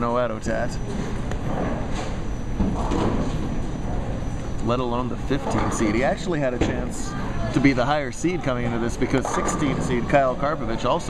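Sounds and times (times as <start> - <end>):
bowling ball rolling: 5.4 - 6.9, 8.8 - 10.5.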